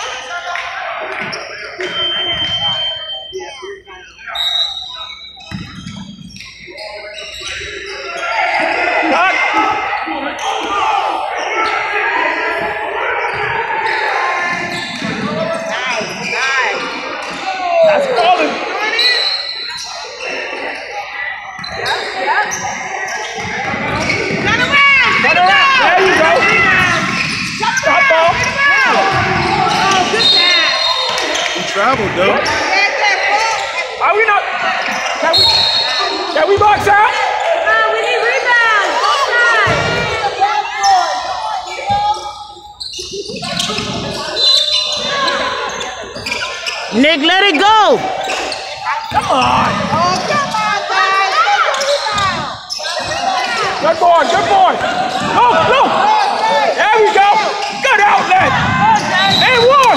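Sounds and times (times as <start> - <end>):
people calling out: 0.0 - 59.9
shoes squeaking: 13.2 - 34.2, 39.0 - 59.9.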